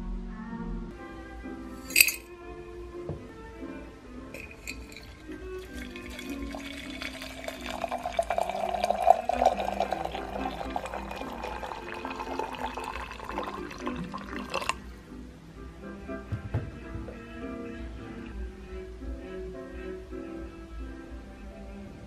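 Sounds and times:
water pouring into glass teapot: 1.8s - 2.2s, 4.4s - 14.9s.

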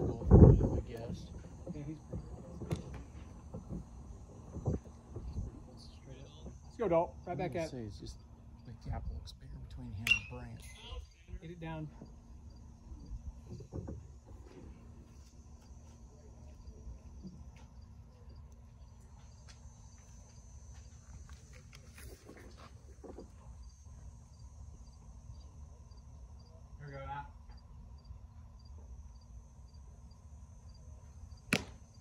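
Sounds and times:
bat cracking ball: 31.5s - 32.0s.

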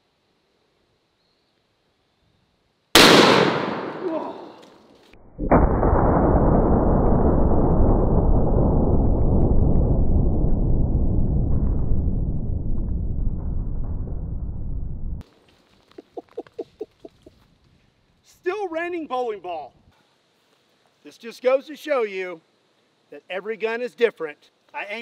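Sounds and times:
slowed-down rifle shot boom: 3.0s - 4.1s, 5.2s - 15.2s.

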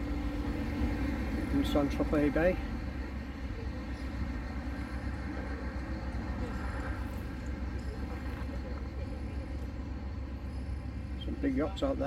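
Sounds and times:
outdoor air noise: 0.0s - 12.0s
traffic rumble: 0.0s - 12.0s.

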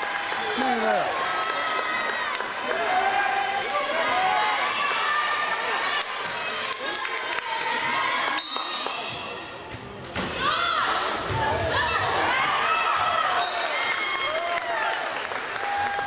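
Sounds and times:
voices shouting and cheering: 0.0s - 9.5s, 10.3s - 16.0s.

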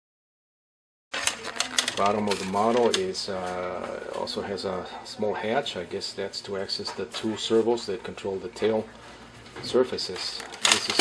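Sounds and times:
handling clicks and rustles: 10.1s - 11.0s.

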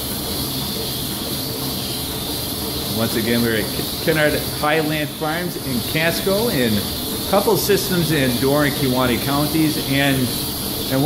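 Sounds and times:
milking machine hiss: 0.0s - 11.0s.

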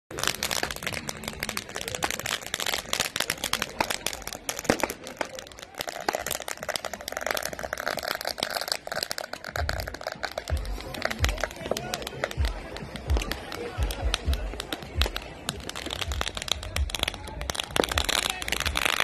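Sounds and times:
firecrackers crackling: 0.1s - 19.0s.

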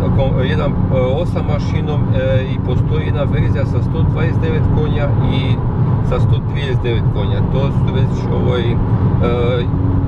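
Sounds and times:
man talking: 0.0s - 9.7s
engine and road noise drone: 0.0s - 10.0s.

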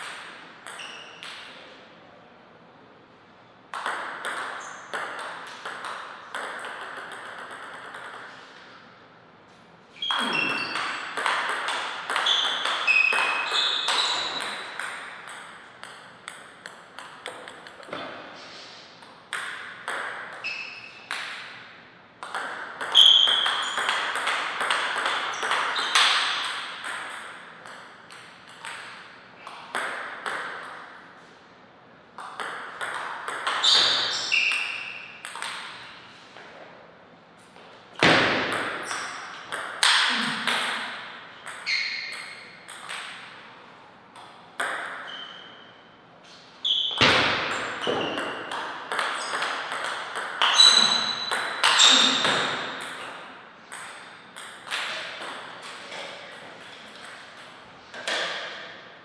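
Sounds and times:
table tennis ball clicking: 3.7s - 8.3s.

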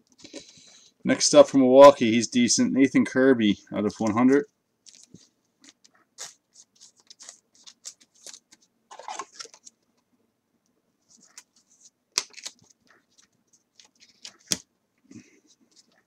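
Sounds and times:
plastic sleeve rustling: 3.9s - 9.8s.

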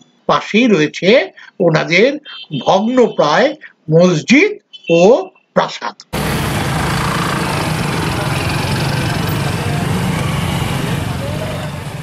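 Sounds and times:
engine running: 6.2s - 12.0s.

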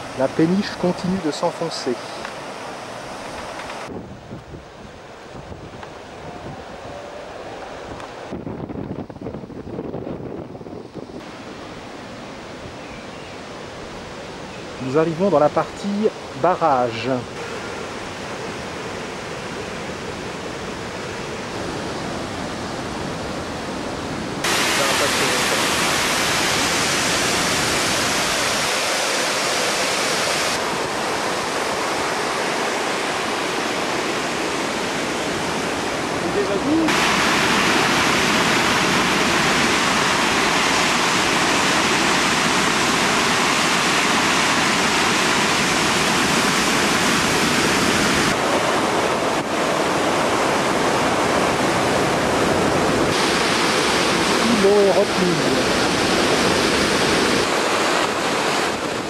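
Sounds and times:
water rushing through dam gates: 0.0s - 3.9s, 13.4s - 23.4s, 24.4s - 59.0s.

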